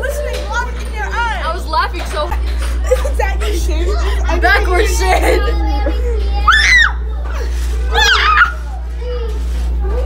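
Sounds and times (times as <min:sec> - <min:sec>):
girls laughing and squealing: 0:02.3 - 0:10.0.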